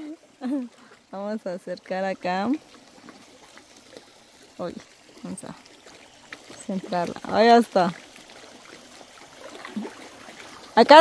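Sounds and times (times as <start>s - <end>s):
lake water lapping: 0.0s - 11.0s.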